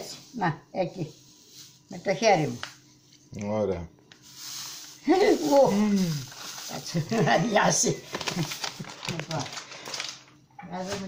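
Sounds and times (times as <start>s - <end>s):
person speaking: 5.0s - 8.1s.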